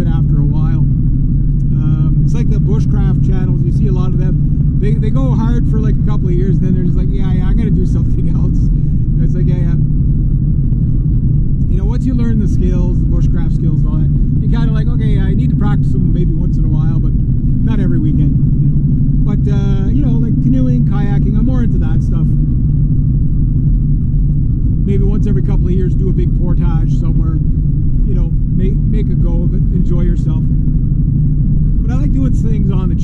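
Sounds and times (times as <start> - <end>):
car engine and road noise: 0.0 - 33.0.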